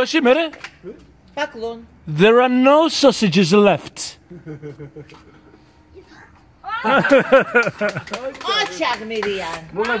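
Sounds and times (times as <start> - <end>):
people laughing: 4.3 - 5.7, 6.7 - 8.4
hand claps: 7.0 - 10.0.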